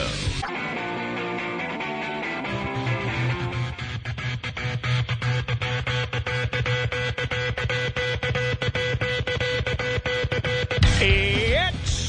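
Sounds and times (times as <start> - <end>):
electronic music with pulsing bass: 0.0 - 12.0.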